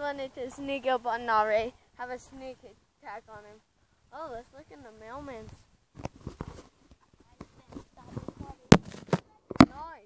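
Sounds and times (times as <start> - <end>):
close-up scuffing and handling noise: 5.5 - 9.8.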